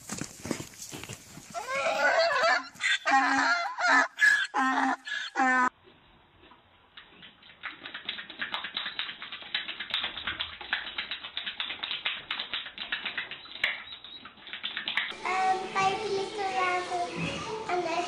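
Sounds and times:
horse clicking its mouth: 7.0s - 15.2s
young child talking: 15.2s - 18.0s.

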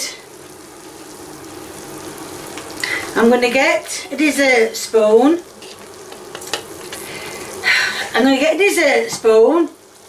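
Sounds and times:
cereal sizzling in a saucepan: 0.0s - 10.0s.

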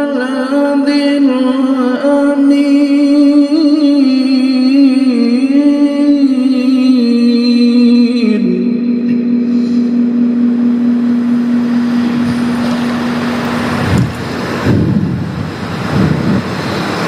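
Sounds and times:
man chanting melodically: 0.0s - 15.0s.

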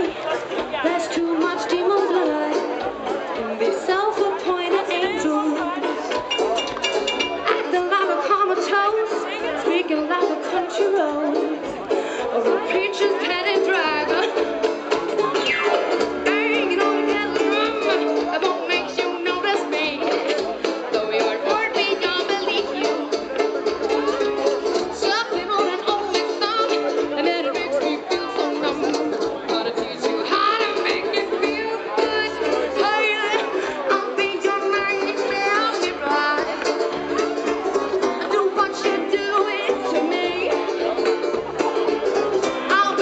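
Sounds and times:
drum kit: 0.0s - 7.7s, 13.2s - 27.2s
bass balalaika: 0.0s - 43.0s
live folk-rock band playing: 0.0s - 43.0s
plucked banjo: 0.0s - 43.0s.

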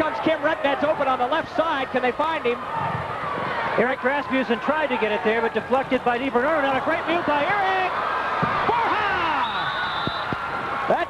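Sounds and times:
crowd cheering: 0.0s - 11.0s
man shouting: 8.7s - 9.6s
high steady whistle tone: 9.1s - 10.4s.

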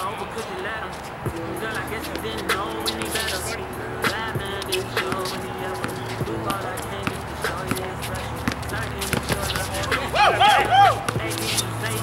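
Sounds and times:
basketball bouncing on concrete: 0.0s - 10.1s, 11.0s - 12.0s
footsteps: 0.0s - 12.0s
rap music with vocals: 0.0s - 12.0s.

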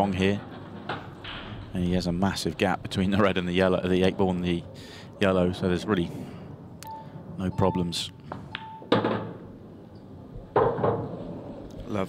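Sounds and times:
pool cue and balls knocking: 0.0s - 4.6s, 7.5s - 11.9s.

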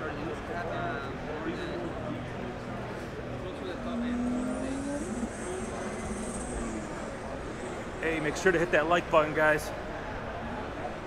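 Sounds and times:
faint crowd chatter: 0.0s - 11.0s.

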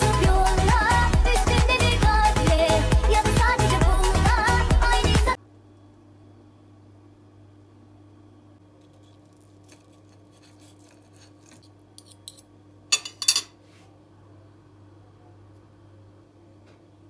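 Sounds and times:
cutlery scraping on a plate: 9.0s - 13.6s
cutlery clinking on a plate: 11.4s - 13.6s.

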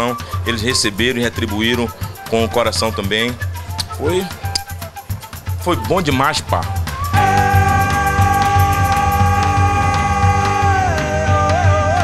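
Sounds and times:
steady drum beat: 0.0s - 12.0s
wooden flute long high note: 0.0s - 12.0s.

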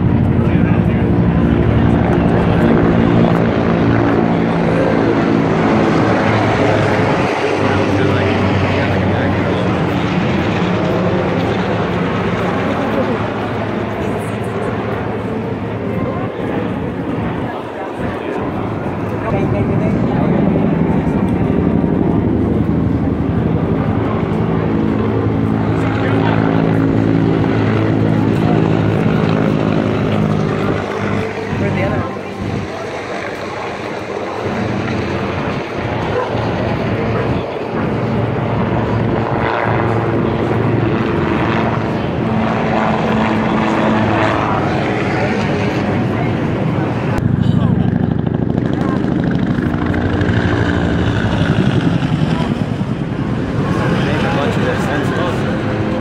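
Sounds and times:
helicopter rotor and engine drone: 0.0s - 56.0s.

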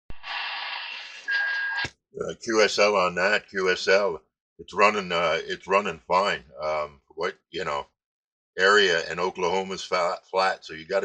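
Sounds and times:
radio static hiss: 0.1s - 1.8s.

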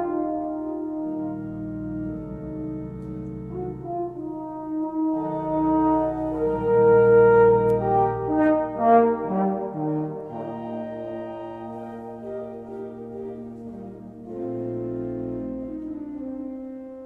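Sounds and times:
french horn slow melody: 0.0s - 17.0s
pipe organ accompaniment: 0.0s - 17.0s.

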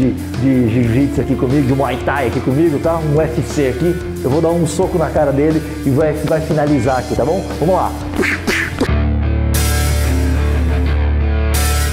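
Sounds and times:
music with chord and deep bass: 0.0s - 11.9s.

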